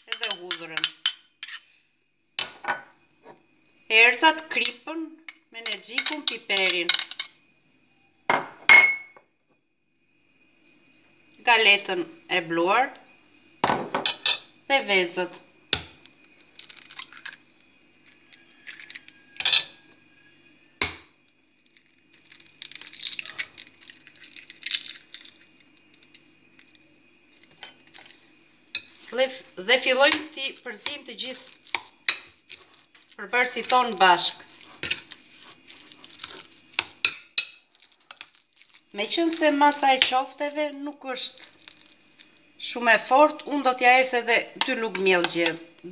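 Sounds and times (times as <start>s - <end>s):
clinks against glass bowl: 0.1s - 1.3s, 4.7s - 7.3s
mixture stirred by hand: 29.8s - 37.1s, 37.7s - 40.5s.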